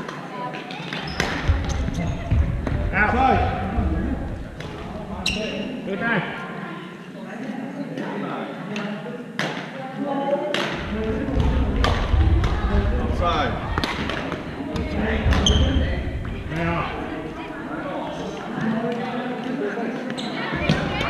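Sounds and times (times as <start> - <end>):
shoe squeaks on wooden floor: 5.2 - 5.7
distant chatter: 10.8 - 21.0.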